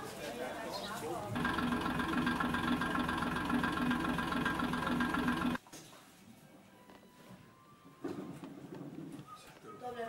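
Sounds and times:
steady mechanical drone: 0:01.4 - 0:05.6.

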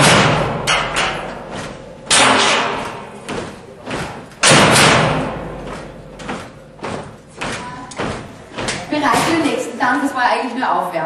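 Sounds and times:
loud echoing impacts: 0:00.0 - 0:09.9
small knocks: 0:00.1 - 0:09.4.

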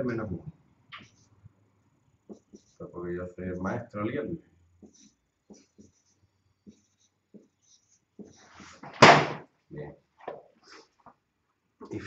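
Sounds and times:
marker pen writing on whiteboard: 0:01.0 - 0:01.5, 0:02.2 - 0:02.9, 0:04.7 - 0:08.8.

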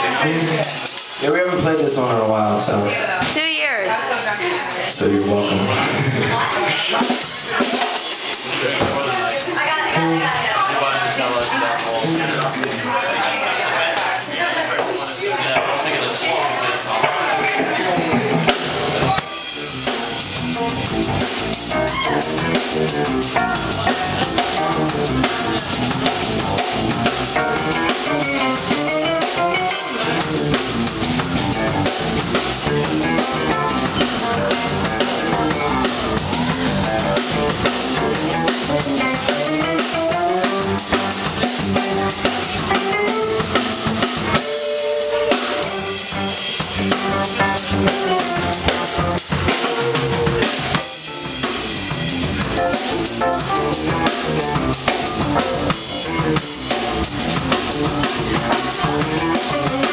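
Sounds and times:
drum kit: 0:00.0 - 0:04.2, 0:05.5 - 0:13.0, 0:16.7 - 0:59.9
live funk band playing: 0:00.0 - 0:59.9
bass guitar lines: 0:17.4 - 0:59.9
electric guitar: 0:17.5 - 0:59.9.

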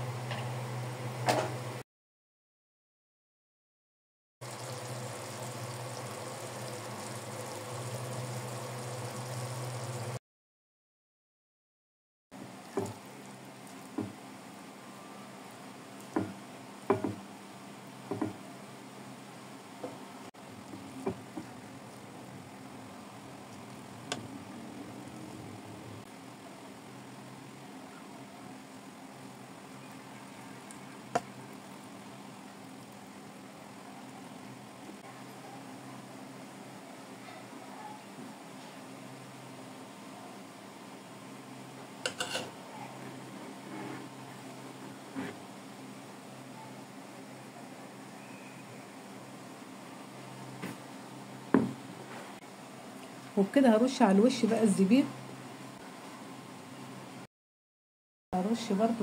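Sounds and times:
broth simmering in a pot: 0:04.4 - 0:10.2, 0:12.4 - 0:35.5
low hum: 0:04.4 - 0:10.2.

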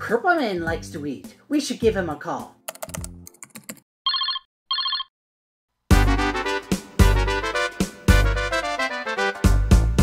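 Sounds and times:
keyboard-like clicks: 0:02.7 - 0:03.8
warbling electronic ringtone: 0:04.1 - 0:05.1.

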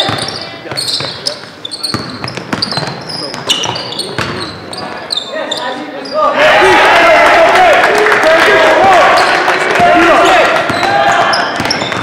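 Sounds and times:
basketball bouncing: 0:00.0 - 0:01.2, 0:01.9 - 0:04.5, 0:10.6 - 0:12.0
sneakers squeaking on hardwood floor: 0:00.0 - 0:06.4, 0:10.6 - 0:12.0
loud shouting voices: 0:06.2 - 0:11.6.

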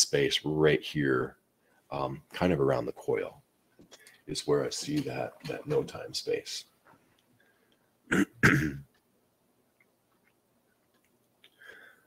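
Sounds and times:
man clearing his throat: 0:08.1 - 0:08.9.

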